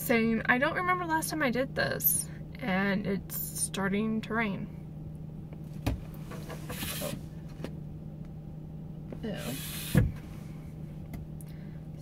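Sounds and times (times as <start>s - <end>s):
car cabin hum: 3.0s - 12.0s.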